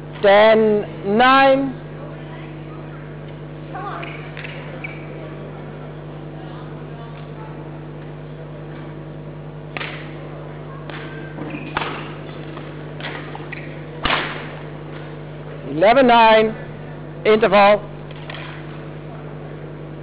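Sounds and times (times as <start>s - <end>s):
hall hum: 0.0s - 20.0s
rackets hitting shuttlecock: 9.7s - 10.2s, 10.9s - 15.1s.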